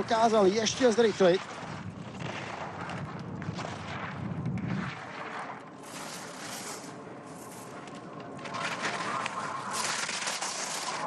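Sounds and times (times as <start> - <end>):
skis carving over hard snow: 0.2 - 7.7, 8.4 - 11.0.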